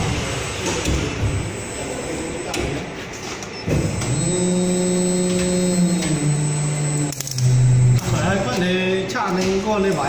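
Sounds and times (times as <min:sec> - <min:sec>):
hydraulic pump whine: 0:00.0 - 0:08.6.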